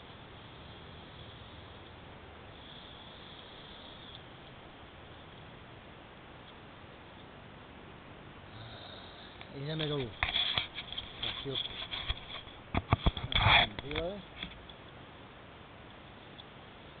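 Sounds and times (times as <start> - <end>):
breathy sniff: 8.5 - 9.5
camera handling noise: 9.8 - 14.7.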